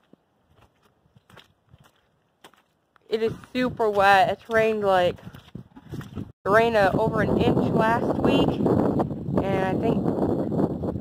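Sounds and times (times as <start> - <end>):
footsteps on muddy ground: 0.0 - 6.9.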